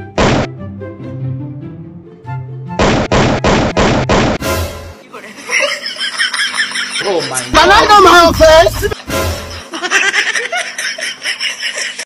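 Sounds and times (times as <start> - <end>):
background music: 0.0 - 11.3.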